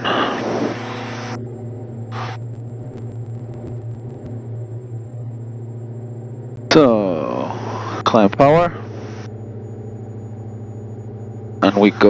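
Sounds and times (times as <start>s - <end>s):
aircraft engines droning: 0.0s - 12.0s.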